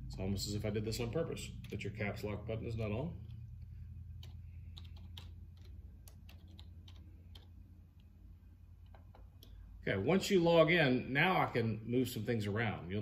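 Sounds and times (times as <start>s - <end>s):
steady low hum: 0.0s - 13.0s
keyboard keys clicking: 4.2s - 7.6s.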